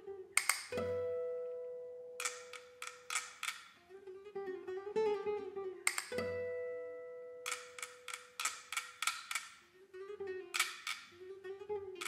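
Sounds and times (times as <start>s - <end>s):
plucked classical guitar: 0.0s - 12.0s.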